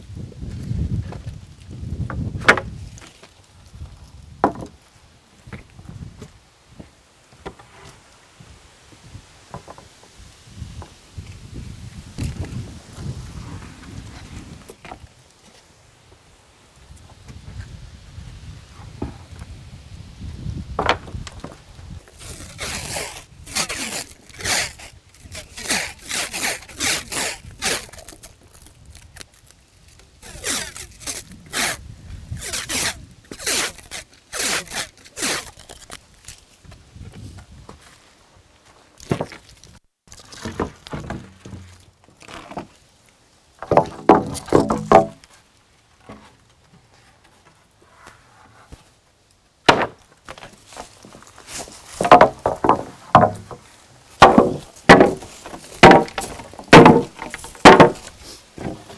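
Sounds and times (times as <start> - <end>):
wooden boards thudding: 2.1 - 2.7, 4.4 - 4.8, 20.8 - 21.6, 40.4 - 41.8, 43.6 - 45.3, 49.7 - 50.6, 52.0 - 58.9.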